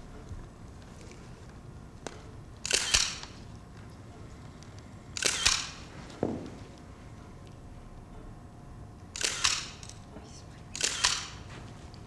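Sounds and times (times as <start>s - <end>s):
camera shutter double click: 2.6s - 3.3s, 5.2s - 5.8s, 9.2s - 9.9s, 10.8s - 11.4s.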